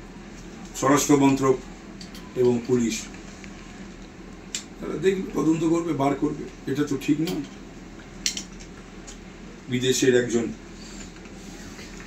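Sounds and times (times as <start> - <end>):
man speaking: 4.8 - 7.5.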